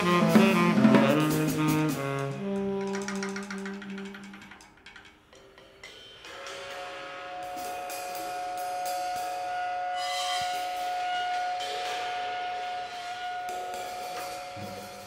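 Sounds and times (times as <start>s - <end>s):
tenor saxophone long note: 0.0s - 4.5s
cymbals washing: 0.0s - 15.0s.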